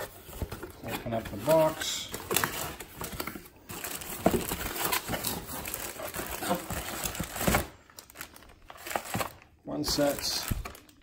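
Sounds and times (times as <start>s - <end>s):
cardboard box rustling: 0.0s - 10.8s
plastic packaging crinkling: 0.7s - 11.0s.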